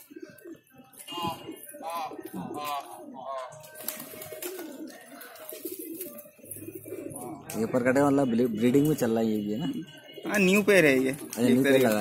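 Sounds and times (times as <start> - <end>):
pigeons cooing: 0.0 - 9.0.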